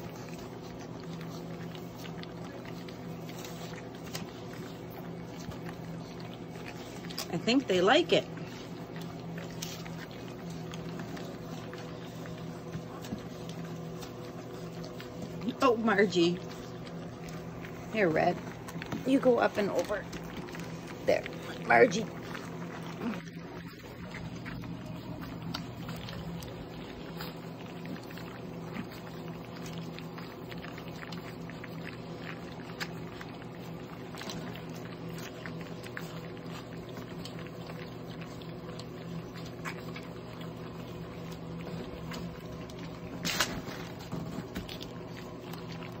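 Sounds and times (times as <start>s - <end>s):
puppies lapping and chewing: 0.0s - 46.0s
steady low hum: 0.0s - 46.0s.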